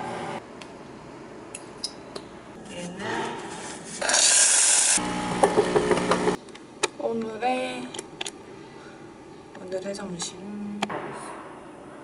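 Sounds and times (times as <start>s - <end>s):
coffee grinder motor humming: 4.1s - 6.4s.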